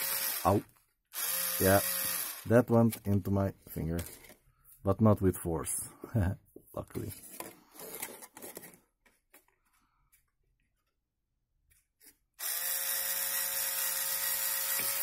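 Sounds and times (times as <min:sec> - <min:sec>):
small electric motor running: 0:00.0 - 0:02.5, 0:12.4 - 0:15.0.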